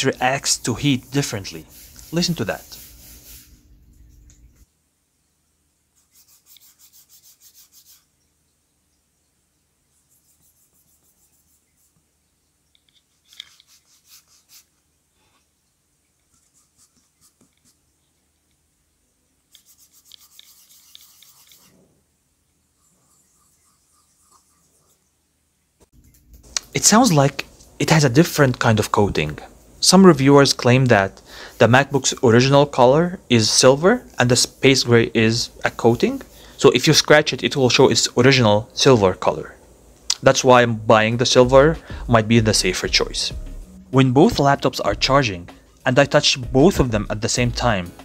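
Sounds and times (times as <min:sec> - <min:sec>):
hand rubbing metal laptop surface: 0:00.0 - 0:03.6, 0:06.0 - 0:08.1, 0:13.2 - 0:14.7, 0:19.6 - 0:21.8.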